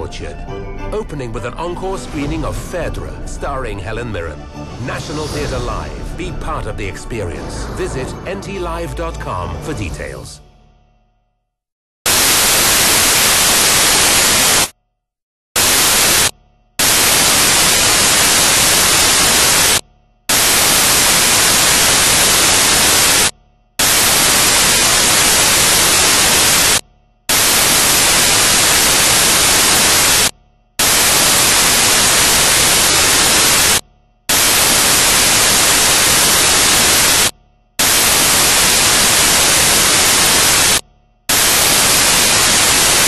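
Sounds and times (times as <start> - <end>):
white noise static hiss: 12.1 - 14.7, 15.6 - 43.0.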